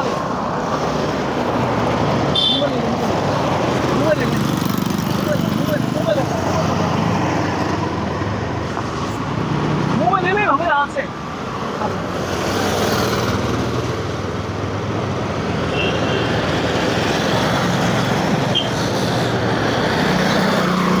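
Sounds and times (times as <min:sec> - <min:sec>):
traffic noise: 0:00.0 - 0:21.0.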